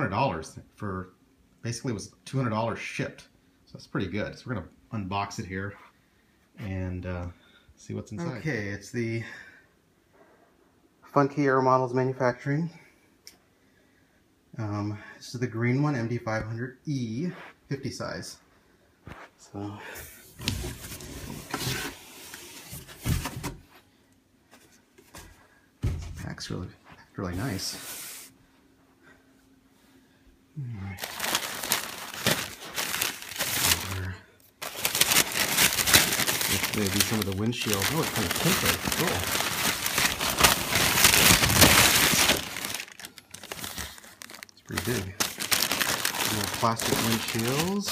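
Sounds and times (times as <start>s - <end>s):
plastic bag crinkling: 31.0s - 47.9s.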